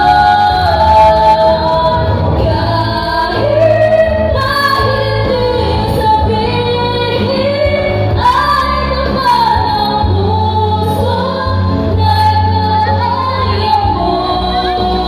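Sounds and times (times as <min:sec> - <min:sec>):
amplified backing music with bass: 0:00.0 - 0:15.0
women singing into microphones: 0:00.0 - 0:15.0.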